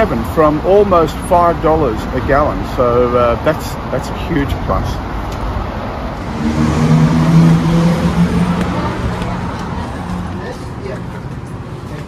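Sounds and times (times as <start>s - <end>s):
vehicle engine passing by: 5.5s - 11.9s.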